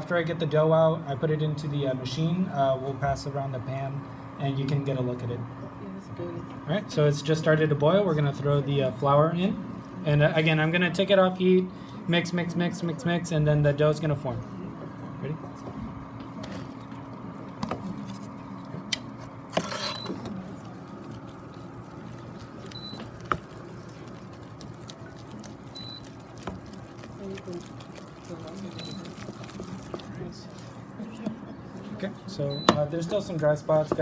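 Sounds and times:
wooden spoon stirring dough: 0:19.1 - 0:32.3.

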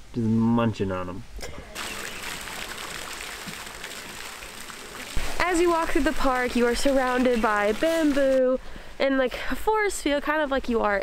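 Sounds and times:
fountain splashing into water: 0:01.7 - 0:08.6.

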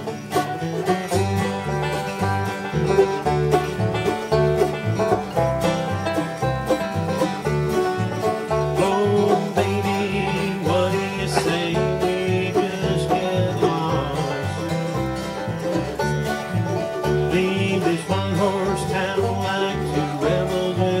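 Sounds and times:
bluegrass band playing: 0:00.0 - 0:21.0
upright bass plucking: 0:00.0 - 0:21.0.

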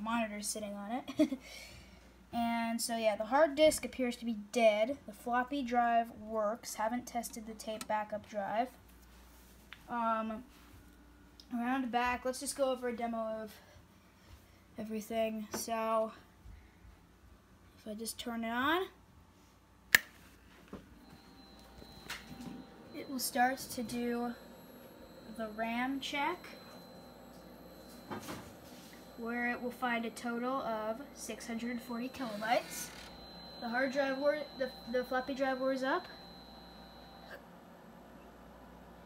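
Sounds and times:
low hum: 0:20.8 - 0:39.0
computer startup whine: 0:20.9 - 0:39.0.

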